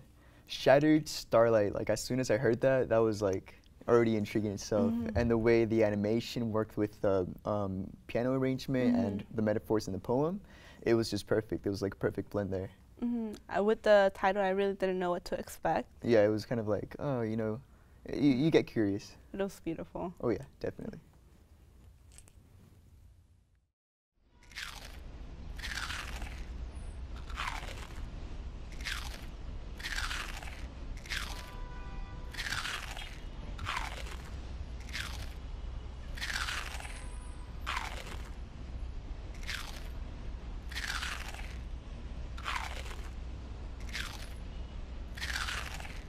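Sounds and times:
potato chips crunching: 24.5 - 25.0, 25.6 - 26.5, 27.2 - 28.0, 28.7 - 31.5, 32.3 - 35.4, 36.1 - 37.0, 37.7 - 38.4, 39.4 - 39.9, 40.7 - 41.6, 42.4 - 43.2, 43.8 - 44.3, 45.2 - 46.0.

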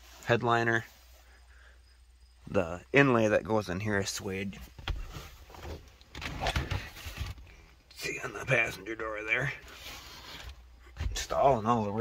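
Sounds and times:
phone handling rumble and rustle: 4.5 - 7.8.

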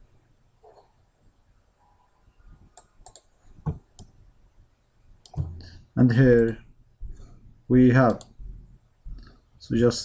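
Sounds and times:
computer mouse clicking: 2.8 - 4.2, 8.0 - 8.4.

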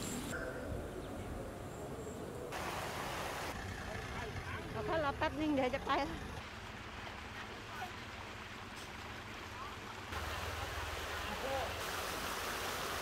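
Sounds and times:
floodwater rushing: 2.5 - 13.0.

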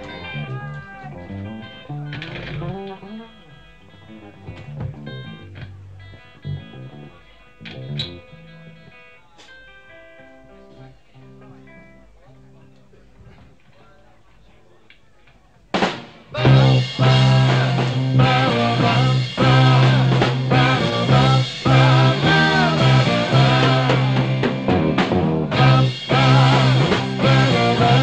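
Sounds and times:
bass guitar single notes: 0.0 - 9.2, 15.8 - 28.0
electric guitar single notes: 0.0 - 12.8, 15.8 - 28.0
full band loud hit: 15.8 - 28.0.

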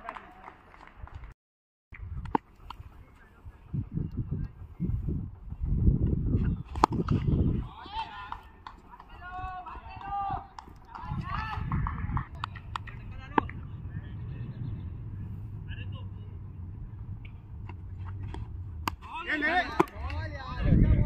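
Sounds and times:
steady low rumble: 11.6 - 19.4.

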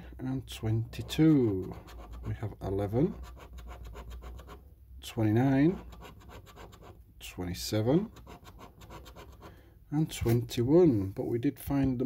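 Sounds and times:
scratch card being scratched: 1.0 - 2.4, 3.0 - 4.6, 5.7 - 7.0, 8.0 - 9.5.

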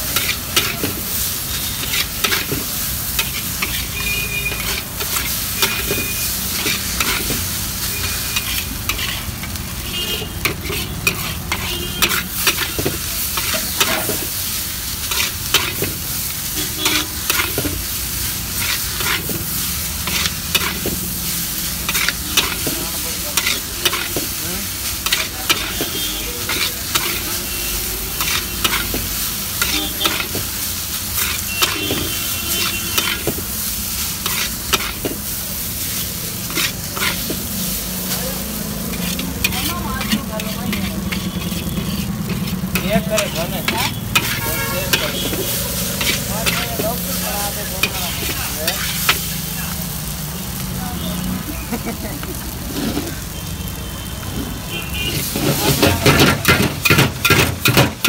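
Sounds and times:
metal spatula scraping wok: 0.0 - 49.4, 52.2 - 53.3, 54.4 - 58.0
noodles sizzling in a wok: 0.0 - 58.0.

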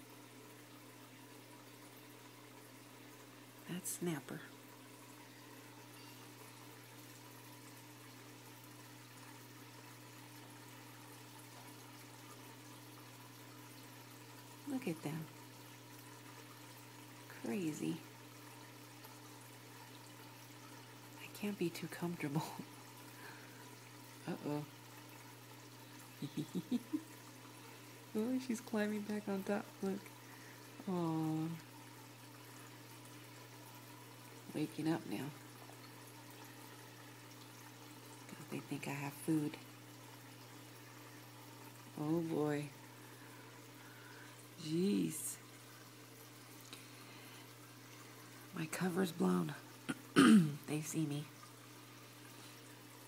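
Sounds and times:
moving water: 0.0 - 53.0
water filter humming: 0.0 - 53.0.

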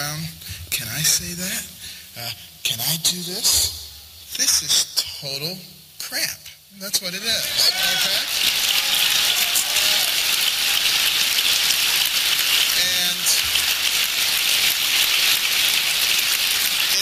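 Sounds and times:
large audience applauding: 7.4 - 17.0.

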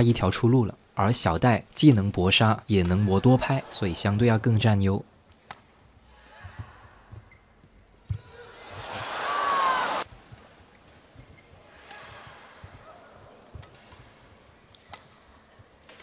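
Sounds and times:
crowd noise: 2.7 - 5.0, 8.0 - 10.1
racket hitting shuttlecock: 5.3 - 5.8, 11.8 - 15.2
shoe squeal on court floor: 6.5 - 8.2, 11.2 - 12.3.

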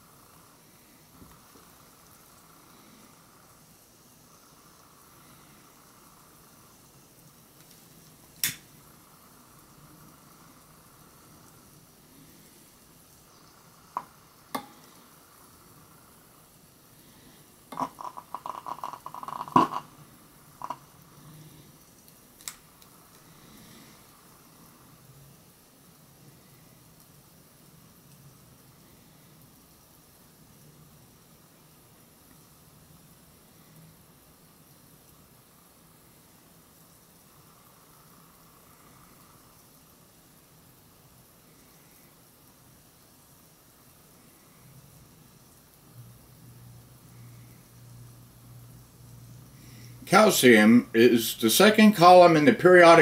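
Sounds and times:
rapid crackling pops of hydrogen igniting: 0.0 - 53.0
sharp clicks and pops: 7.6 - 8.7, 17.7 - 20.0, 20.6 - 20.9, 22.0 - 23.2.

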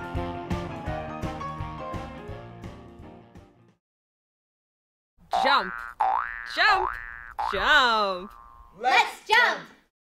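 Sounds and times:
cartoon boing sound effects: 5.4 - 8.7.

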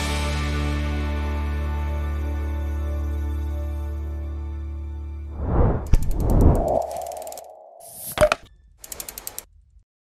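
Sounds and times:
rising whoosh: 5.3 - 8.1.

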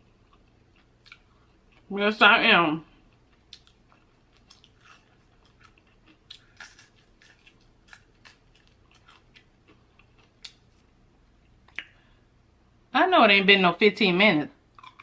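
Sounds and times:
crunchy chewing: 0.0 - 1.9, 3.0 - 10.9, 14.8 - 15.0.

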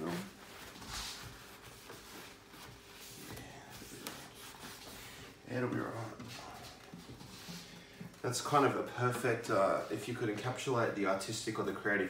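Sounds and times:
tissue wiping a wooden tabletop: 0.0 - 7.8.

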